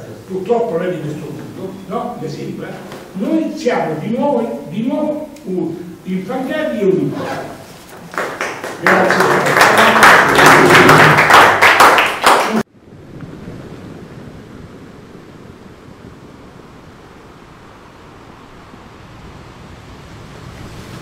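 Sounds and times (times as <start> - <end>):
applause: 8.0 - 12.7
voices: 8.7 - 11.5
sea surf: 8.8 - 21.0.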